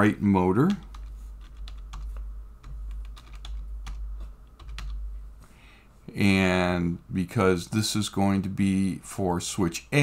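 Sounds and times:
steady low hum: 0:00.0 - 0:10.0
computer keyboard typing: 0:00.6 - 0:05.1.

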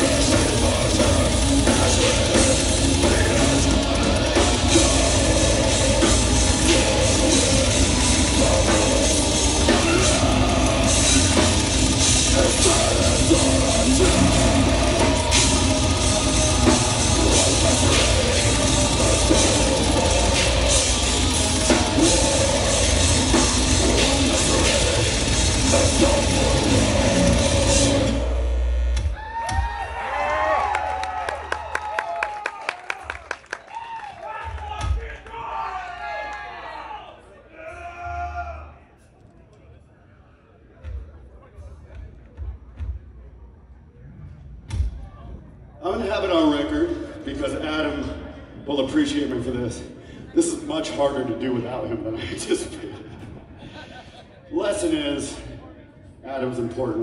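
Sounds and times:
death metal band playing live: 0:00.0 - 0:29.7
audience cheering and whistling: 0:29.0 - 0:37.0.

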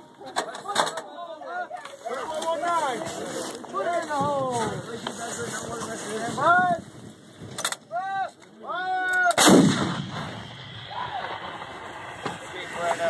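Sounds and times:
howitzer firing blast: 0:09.4 - 0:13.0.

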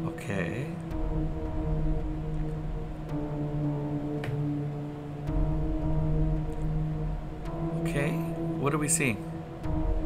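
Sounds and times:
ambient droning music: 0:00.0 - 0:10.0.

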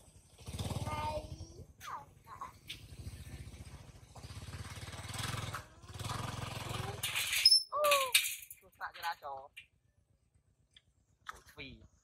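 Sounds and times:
motor scooter engine running: 0:00.0 - 0:01.6, 0:02.2 - 0:07.0.

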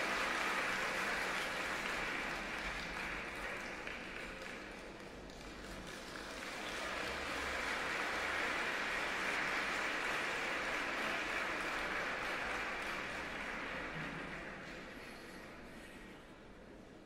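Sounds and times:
audience applauding: 0:00.0 - 0:15.4.

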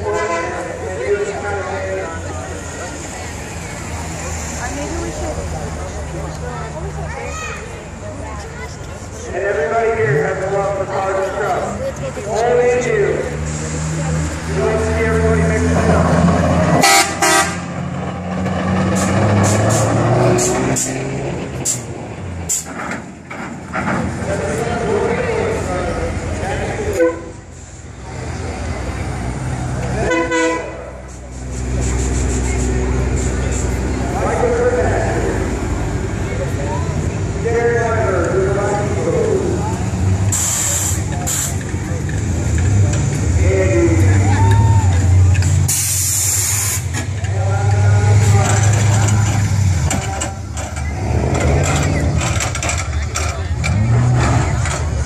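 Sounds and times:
car engines running: 0:00.0 - 0:55.0
car horn toots: 0:16.8 - 0:17.6, 0:26.9 - 0:27.4, 0:30.0 - 0:30.8.

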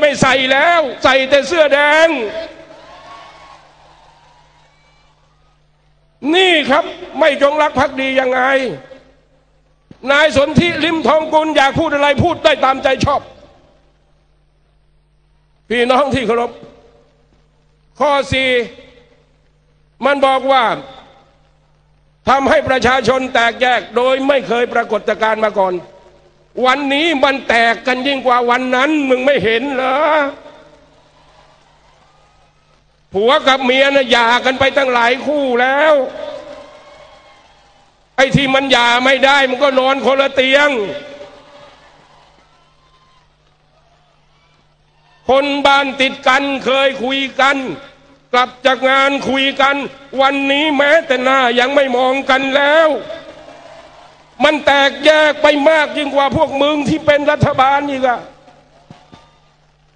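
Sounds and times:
man's voice over public address: 0:00.0 - 0:02.7, 0:06.1 - 0:09.3, 0:09.9 - 0:13.8, 0:15.7 - 0:17.2, 0:17.9 - 0:19.3, 0:20.0 - 0:21.5, 0:22.2 - 0:30.9, 0:33.1 - 0:36.6, 0:38.2 - 0:41.3, 0:45.2 - 0:53.3, 0:54.4 - 0:58.7
faint steady hum: 0:00.0 - 0:59.9.

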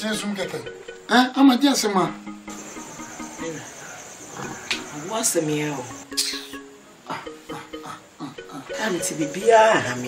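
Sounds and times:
soft background music: 0:00.0 - 0:10.0
crickets trilling: 0:02.1 - 0:07.4.

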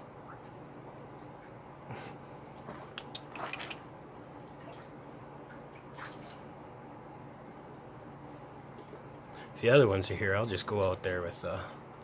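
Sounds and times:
short laugh: 0:01.9 - 0:02.4
water splashes and drips: 0:04.5 - 0:06.5.

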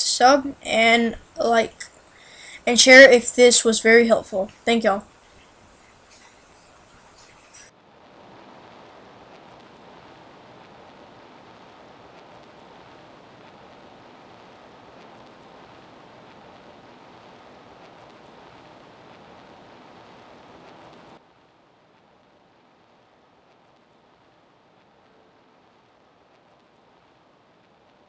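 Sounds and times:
steady hiss: 0:00.0 - 0:28.0.

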